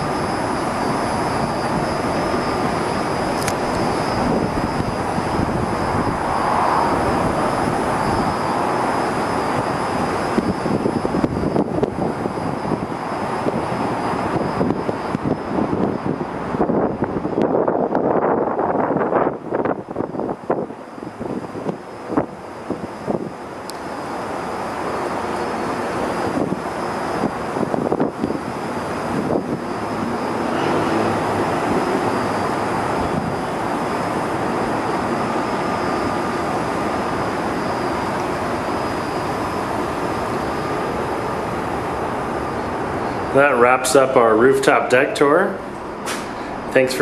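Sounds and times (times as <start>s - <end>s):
city roar: 0.0s - 47.0s.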